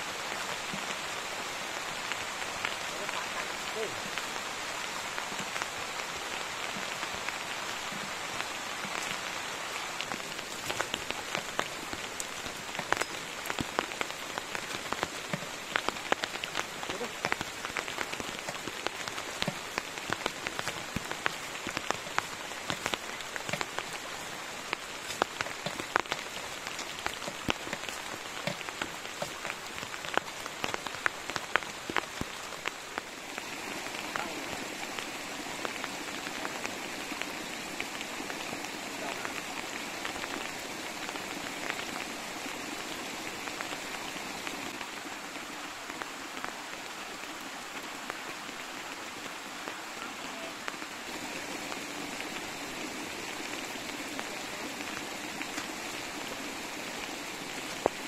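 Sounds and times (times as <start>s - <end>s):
raindrops ticking close by: 0.0s - 58.0s
steady rain falling: 0.0s - 58.0s.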